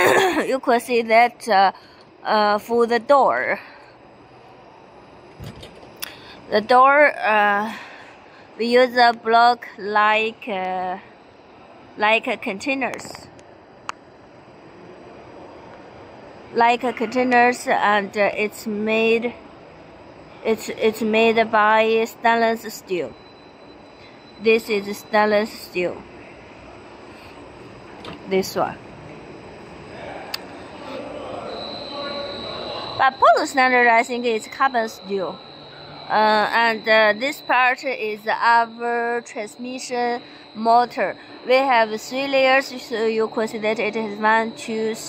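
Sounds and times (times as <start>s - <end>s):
factory hall background noise: 0.0s - 45.0s
steady background noise: 0.0s - 45.0s.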